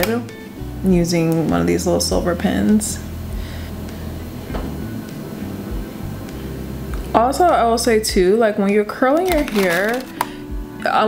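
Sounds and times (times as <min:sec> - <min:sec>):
low room hum: 0:00.0 - 0:10.7.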